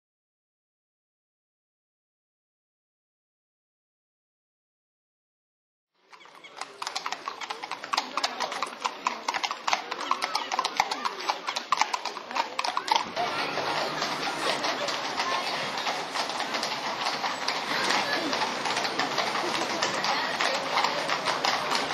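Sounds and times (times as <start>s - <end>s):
hooves clip-clopping on wet road: 6.1s - 21.9s
background voices: 6.2s - 21.9s.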